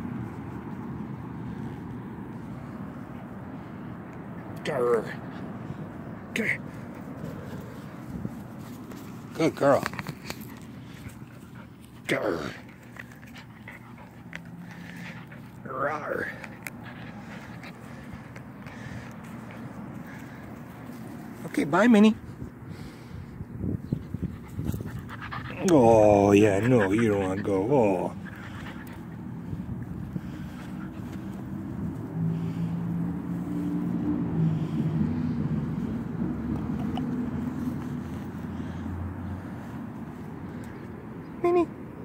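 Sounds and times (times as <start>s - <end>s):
low engine rumble: 0.0s - 42.0s
wind on microphone: 22.2s - 25.2s.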